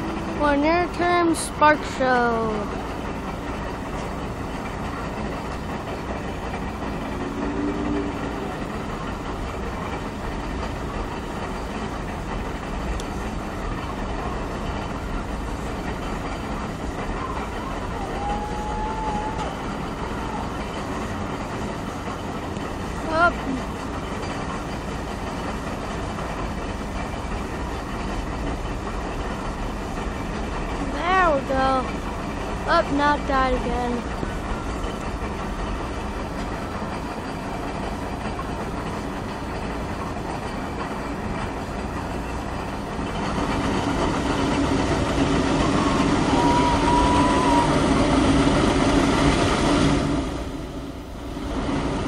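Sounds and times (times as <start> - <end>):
steam exhaust rushing up stack: 0.0 - 52.0.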